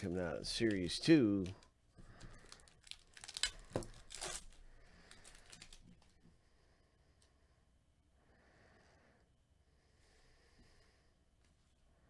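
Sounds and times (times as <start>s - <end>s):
foil wrapper tearing and crinkling: 2.2s - 6.0s.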